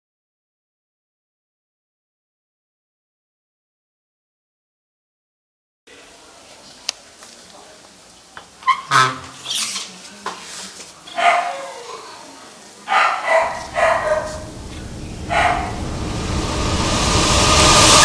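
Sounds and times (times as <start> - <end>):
dog barking: 11.1 - 11.9, 12.9 - 14.4, 15.3 - 15.8
low rushing noise: 13.2 - 18.0.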